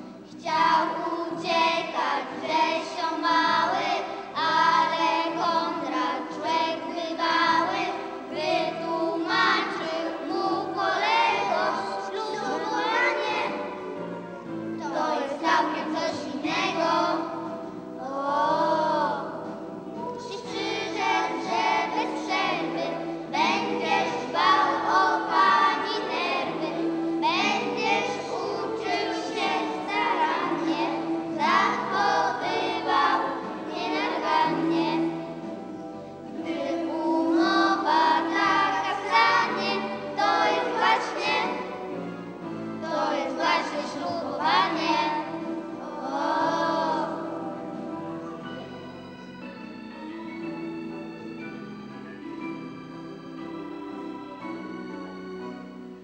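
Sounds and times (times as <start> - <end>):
children singing in unison: 0.0 - 48.6.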